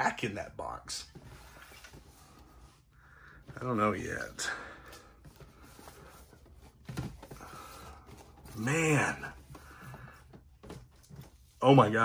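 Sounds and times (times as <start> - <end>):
cardboard boxes rustling: 5.1 - 12.0.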